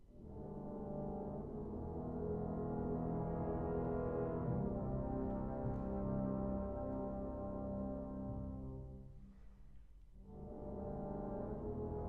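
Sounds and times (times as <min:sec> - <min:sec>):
wind ensemble sustained low chord: 0:00.1 - 0:09.5, 0:10.1 - 0:12.0.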